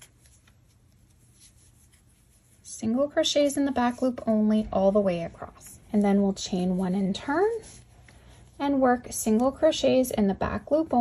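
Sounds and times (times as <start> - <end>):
yarn rustling with crochet hook: 0.0 - 11.0
woman speaking: 2.7 - 7.8, 8.6 - 11.0.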